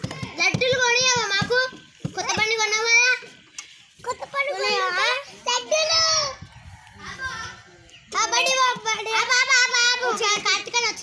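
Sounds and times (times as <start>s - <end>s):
child's high voice: 4.1s - 6.5s.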